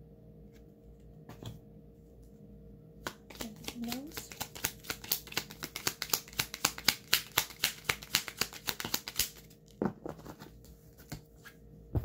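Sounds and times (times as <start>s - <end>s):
cards being shuffled: 3.0s - 9.6s.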